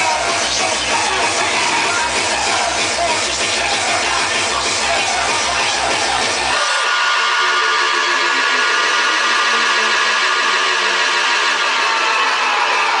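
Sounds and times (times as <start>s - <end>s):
distorted synth wash: 0.0s - 13.0s.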